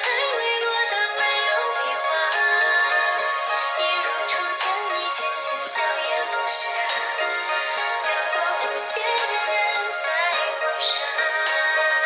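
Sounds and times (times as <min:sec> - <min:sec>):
song with singer and instruments: 0:00.0 - 0:12.0.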